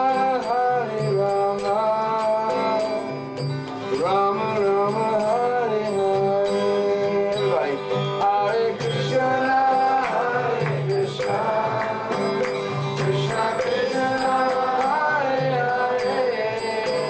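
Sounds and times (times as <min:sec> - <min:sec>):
voices singing devotional song: 0:00.0 - 0:03.2, 0:03.9 - 0:17.0
acoustic guitar: 0:00.0 - 0:17.0
high metallic jingle: 0:00.0 - 0:17.0.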